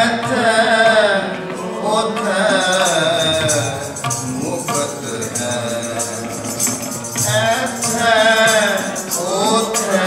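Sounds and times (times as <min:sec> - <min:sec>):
tabla playing: 0:00.0 - 0:10.0.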